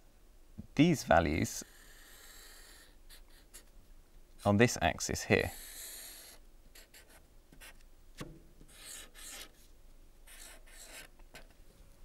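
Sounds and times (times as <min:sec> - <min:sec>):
marker pen writing on paper: 0:05.5 - 0:07.8, 0:08.7 - 0:09.6, 0:10.3 - 0:11.5.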